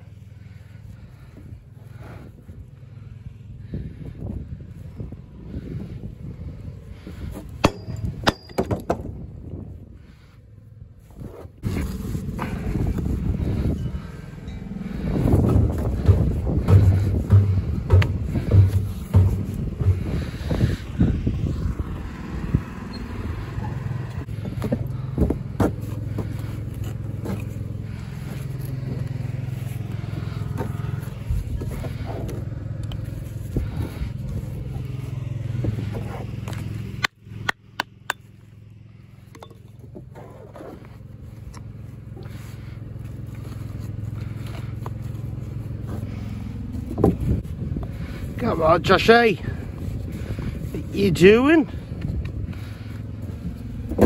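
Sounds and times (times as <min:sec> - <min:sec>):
low mechanical hum: 0:00.0 - 0:54.0.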